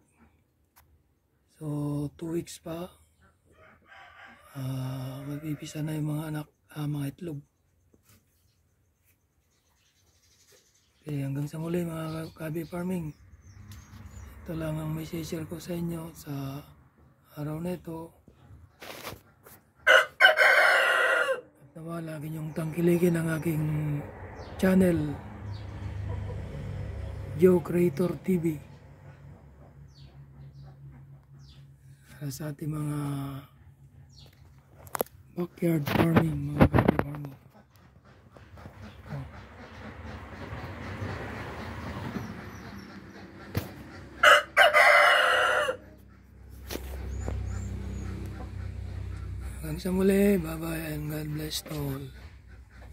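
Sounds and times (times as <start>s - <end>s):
rooster crowing: 3.6s - 5.8s, 19.8s - 21.6s, 44.2s - 46.0s.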